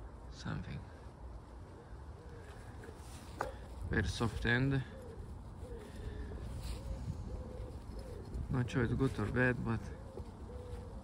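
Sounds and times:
pigeon cooing: 1.6s - 3.8s, 4.5s - 11.0s.

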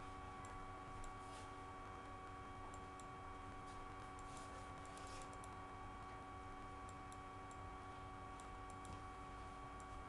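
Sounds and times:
steady background whine: 0.0s - 10.0s
computer clicks: 4.2s - 5.6s.

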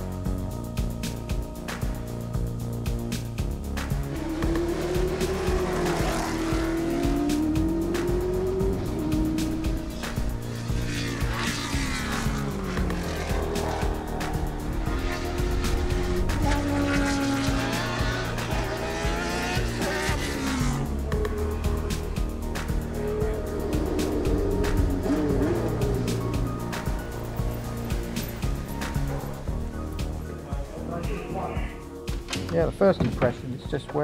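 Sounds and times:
background music: 0.0s - 34.0s
racing car engine revving: 3.2s - 30.2s.

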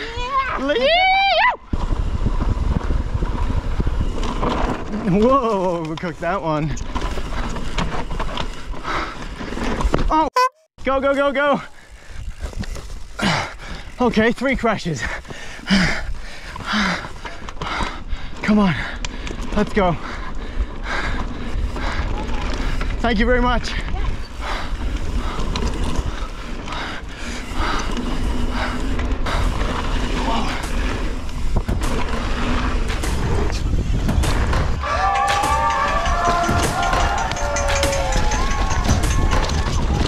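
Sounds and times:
bike rattling: 0.0s - 10.2s, 10.8s - 40.0s
bike tyres rolling over dirt: 0.0s - 10.2s, 10.9s - 40.0s
wind buffeting microphone: 1.6s - 5.2s, 20.0s - 40.0s.

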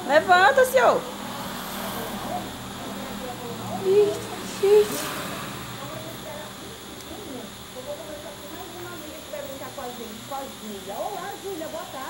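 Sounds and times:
background hum and hiss: 0.0s - 12.0s.

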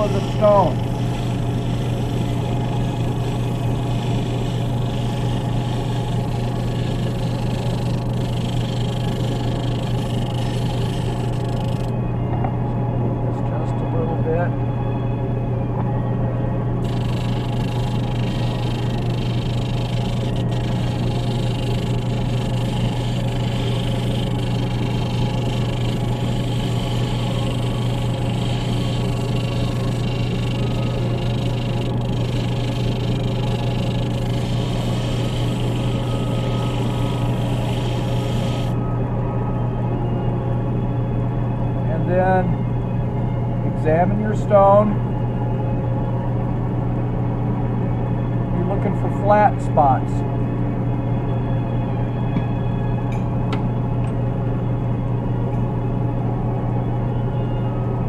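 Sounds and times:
sander humming: 0.0s - 11.9s, 16.8s - 38.8s.

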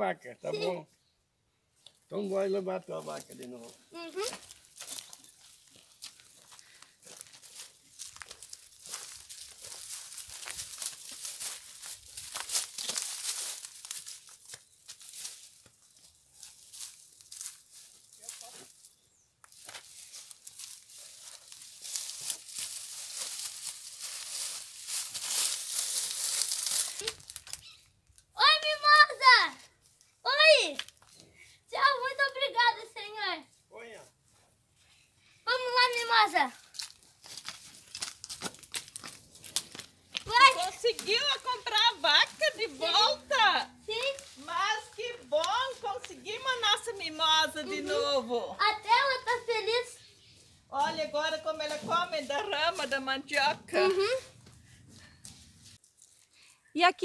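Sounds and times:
steps through dry straw and leaves: 2.3s - 29.0s, 35.5s - 56.7s.

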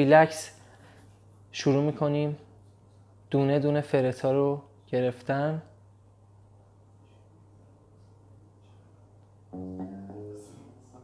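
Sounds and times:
electric guitar picked notes: 9.6s - 10.7s.

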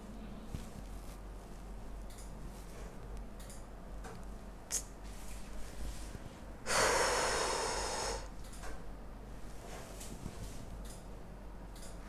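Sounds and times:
person breathing out loudly: 6.7s - 8.3s.

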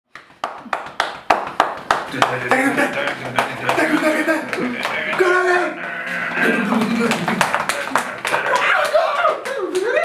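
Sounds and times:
hand claps: 0.1s - 5.5s, 6.8s - 10.0s.

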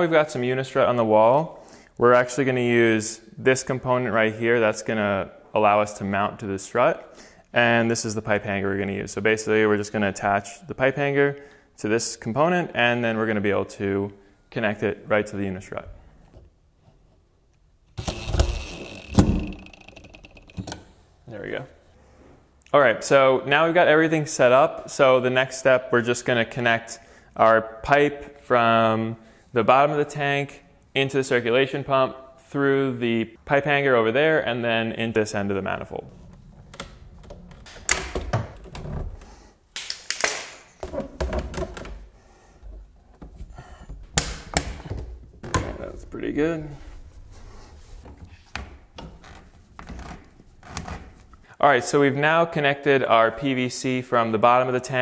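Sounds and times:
plastic pipe knocking and scraping: 18.0s - 20.9s, 40.8s - 46.0s.

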